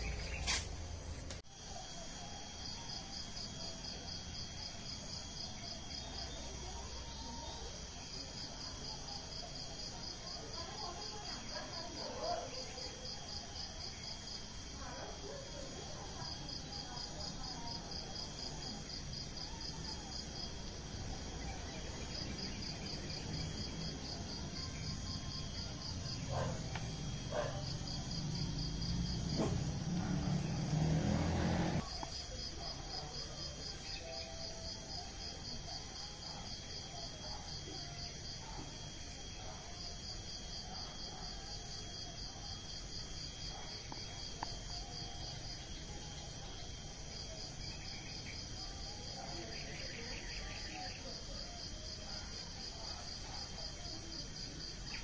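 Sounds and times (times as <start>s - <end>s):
high-pitched insect drone: 0.0s - 55.0s
insects chirping in rapid pulses: 0.0s - 55.0s.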